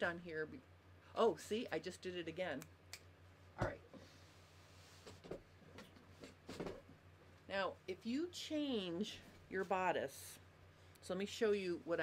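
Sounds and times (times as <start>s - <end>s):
low electrical hum: 0.0s - 12.0s
faint rustles and light knocks: 3.6s - 7.0s.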